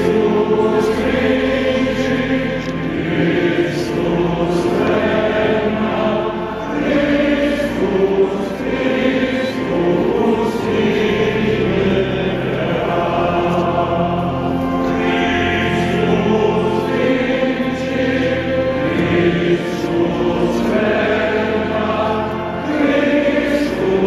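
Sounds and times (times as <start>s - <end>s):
choir singing chant: 0.0s - 24.0s.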